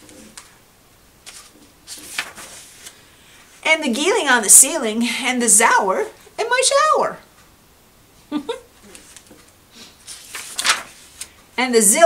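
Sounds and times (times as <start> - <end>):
book pages turning: 1.2 - 3.0, 8.8 - 11.4.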